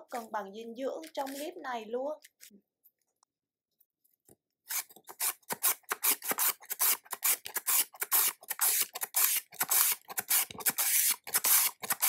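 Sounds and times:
carrot rasping on julienne slicer: 0:04.7 - 0:12.0.

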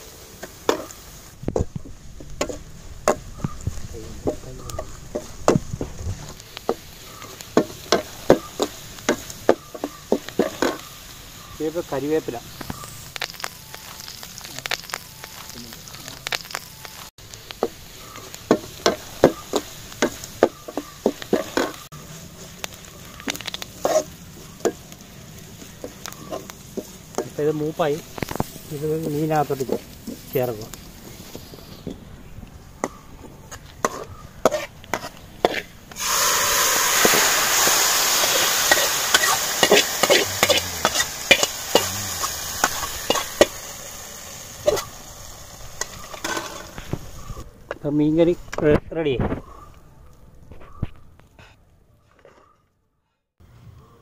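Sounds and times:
shallots frying: 0:00.0 - 0:48.7
metal spatula scraping a pan: 0:23.4 - 0:24.8, 0:33.8 - 0:35.7, 0:38.6 - 0:43.5
short animal calls: 0:39.7 - 0:43.4.

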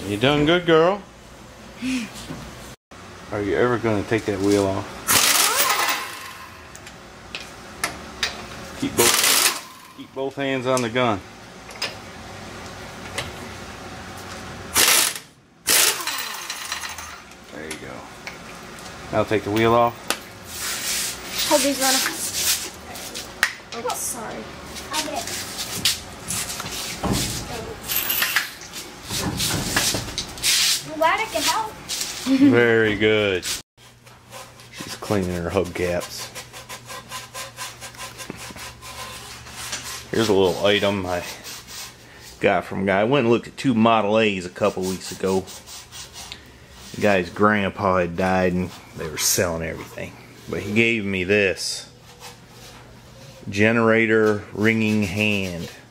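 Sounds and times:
pneumatic impact wrench bursts: 0:05.1 - 0:06.5, 0:09.0 - 0:09.9, 0:14.7 - 0:16.6
rag wiping a hubcap: 0:20.5 - 0:23.3, 0:33.3 - 0:42.4, 0:44.5 - 0:47.4, 0:52.0 - 0:55.9.

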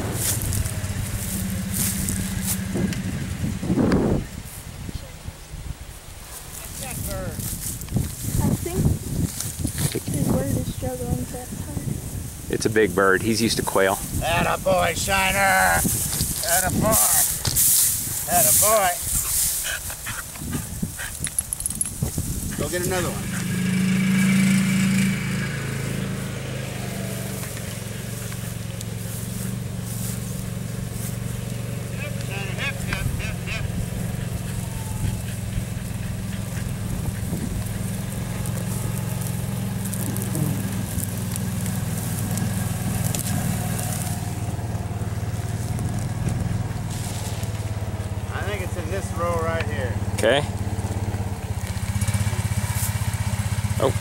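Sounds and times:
utility vehicle engine humming: 0:00.0 - 0:05.2, 0:06.6 - 0:54.0.

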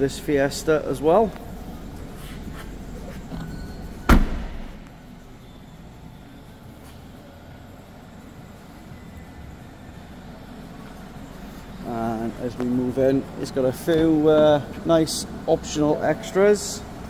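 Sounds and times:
car tailgate slamming: 0:04.0 - 0:04.8.

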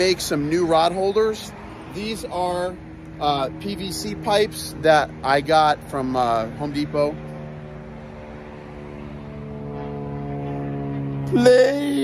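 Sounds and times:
airplane droning overhead: 0:00.0 - 0:12.0.

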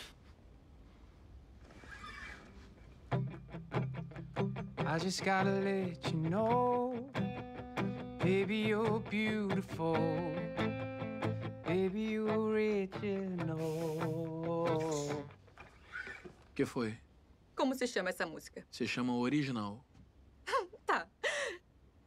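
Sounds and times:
guitar strumming: 0:03.1 - 0:15.5
person singing: 0:08.2 - 0:15.4.

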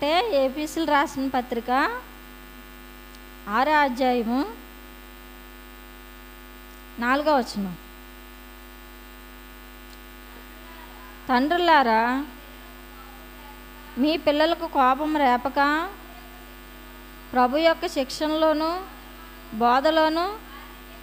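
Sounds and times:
woman speaking: 0:00.0 - 0:02.1, 0:03.5 - 0:04.7, 0:07.0 - 0:07.9, 0:10.2 - 0:16.6, 0:17.3 - 0:21.0
electrical mains hum: 0:00.0 - 0:21.0.

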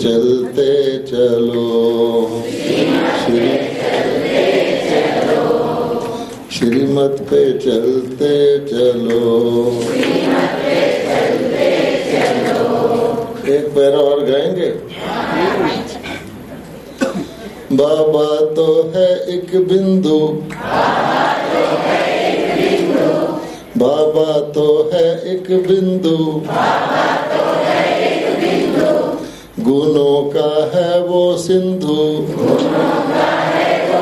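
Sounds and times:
group singing in chorus: 0:00.0 - 0:13.7, 0:17.8 - 0:34.0.

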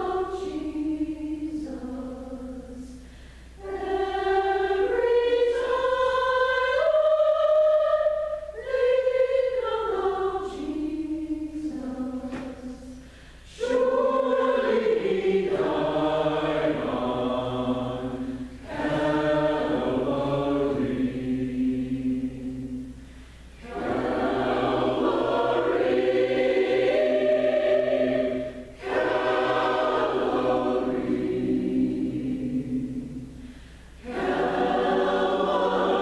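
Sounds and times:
mixed choir singing: 0:00.0 - 0:03.0, 0:03.6 - 0:23.0, 0:23.6 - 0:36.0.

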